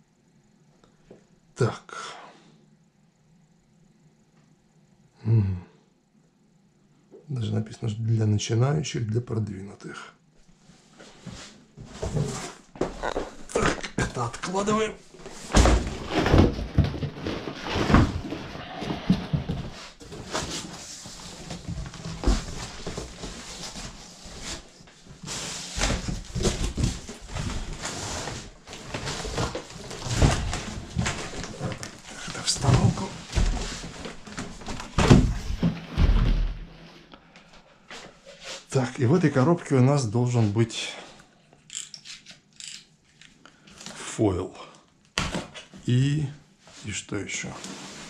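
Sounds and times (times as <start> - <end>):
dull thumps of boxes moved: 11.0 - 13.9, 15.1 - 36.7
plastic and cardboard rustling: 11.0 - 36.8, 47.4 - 48.0.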